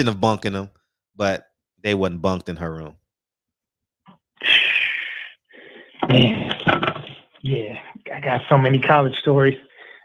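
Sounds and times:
faint breath: 4.4 - 6.0, 9.7 - 10.0
person wheezing: 4.4 - 6.1.

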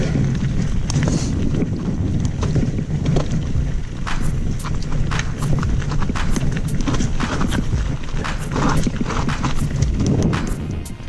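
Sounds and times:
bike rattles and clicks: 0.0 - 11.0
bike tyres rolling on dirt: 0.0 - 11.0
wind buffeting microphone: 0.0 - 11.0.

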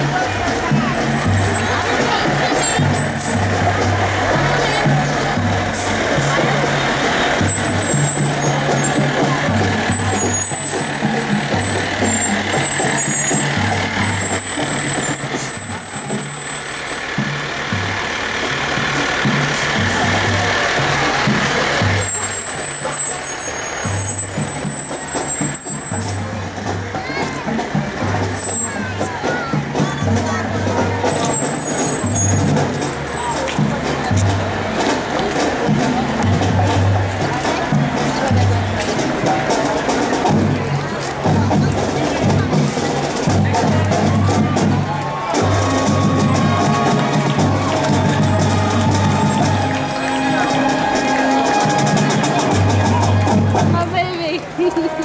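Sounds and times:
drum and bugle corps playing: 0.0 - 55.0
spectator chatter: 0.0 - 55.0.

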